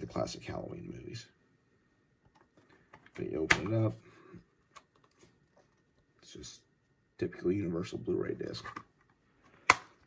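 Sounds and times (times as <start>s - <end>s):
plastic case clicks: 2.9s - 3.8s, 9.6s - 10.0s.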